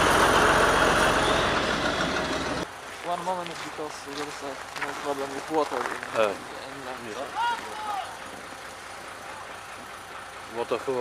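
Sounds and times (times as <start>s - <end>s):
diesel locomotive idling: 0.0s - 11.0s
people talking: 3.0s - 8.4s, 10.5s - 11.0s
person calling out: 7.3s - 8.1s.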